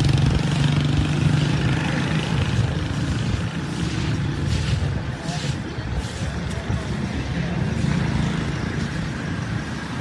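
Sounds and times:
low rumble of street noise: 0.0 - 10.0.

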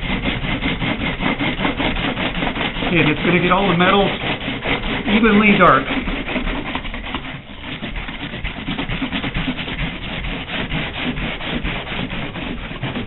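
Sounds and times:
bristle brush scrubbing glass: 0.0 - 13.0.

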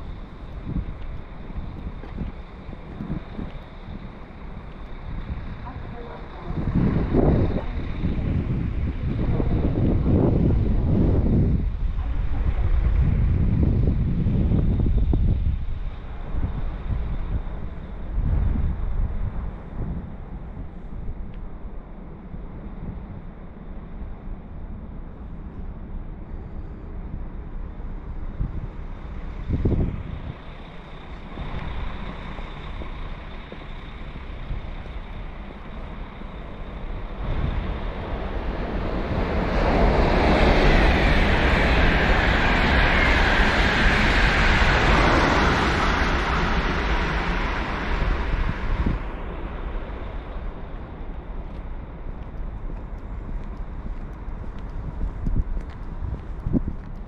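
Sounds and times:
train passing: 0.0 - 57.0
wind rumble on microphone: 0.0 - 57.0.

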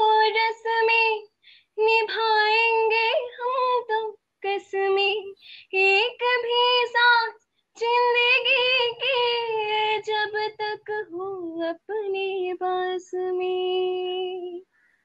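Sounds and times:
woman singing unaccompanied: 0.0 - 14.7.

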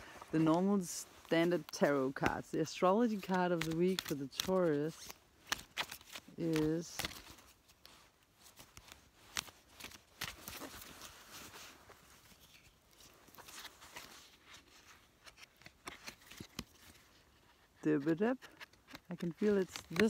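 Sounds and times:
cards rustling and clicking: 0.0 - 20.0.

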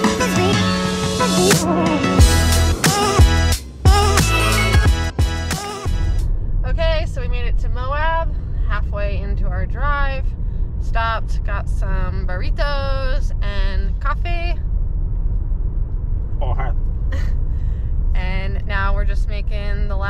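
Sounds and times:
car road and engine hum: 0.0 - 20.0
woman talking: 6.6 - 14.6, 18.1 - 20.0.

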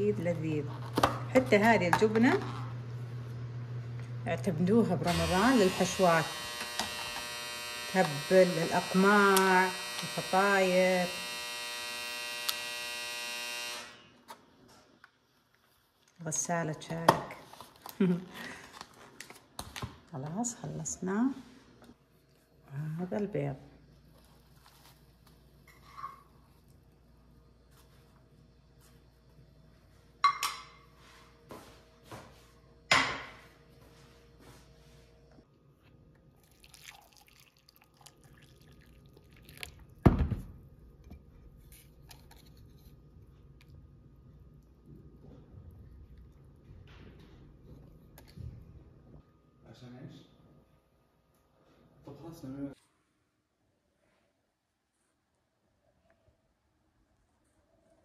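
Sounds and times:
electrical buzz: 1.3 - 14.2
water pouring into a mug: 36.3 - 40.0.

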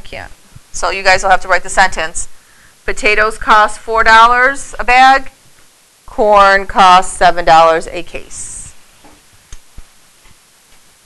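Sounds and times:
low hiss: 0.0 - 11.0.

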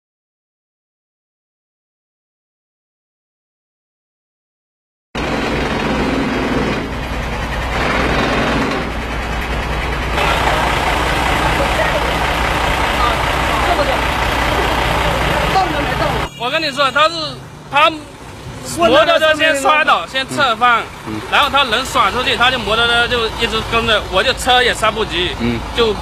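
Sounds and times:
vehicle engine running: 5.2 - 26.0
people talking: 10.2 - 12.2, 12.9 - 26.0.

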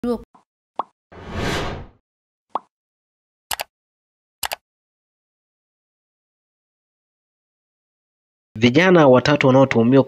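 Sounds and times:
whoosh: 1.2 - 1.9.

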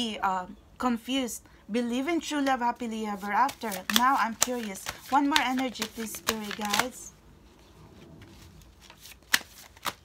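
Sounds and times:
cards shuffling: 2.5 - 7.1, 8.2 - 10.0
card slaps: 3.5 - 7.0, 8.8 - 10.0.

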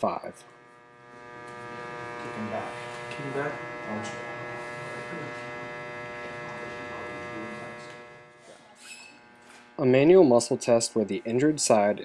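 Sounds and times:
electrical mains hum: 0.0 - 12.0
faint indistinct voices: 2.1 - 9.4.

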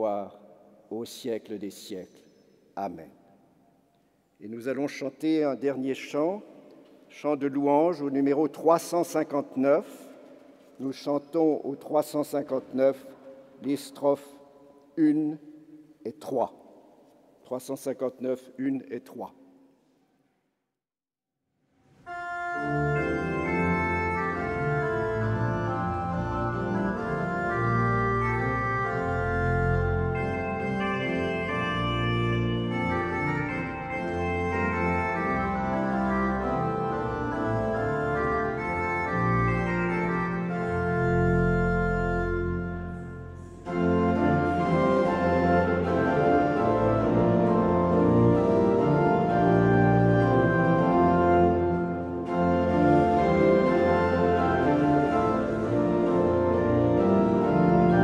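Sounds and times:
pipe organ playing chords: 22.1 - 58.0.

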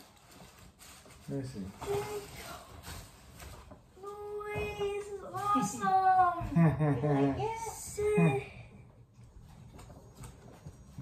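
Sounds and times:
tissue paper and gift bag rustling: 0.0 - 8.4.

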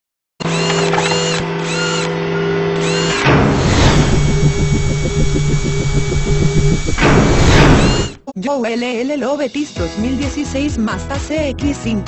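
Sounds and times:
fast pulsing whir: 0.4 - 2.2, 2.8 - 8.2
steady electronic hum: 2.3 - 8.2
electronic sweeps: 2.9 - 8.2.

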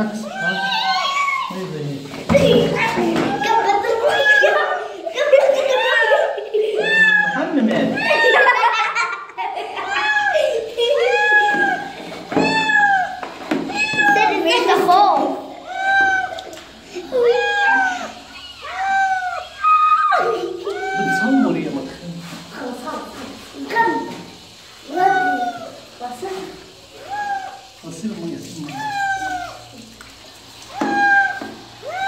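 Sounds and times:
shower running: 0.0 - 32.0
cat meowing: 0.2 - 1.6, 11.0 - 14.4, 15.6 - 16.5, 17.1 - 21.6, 27.0 - 27.7, 28.7 - 29.7, 30.7 - 32.0.

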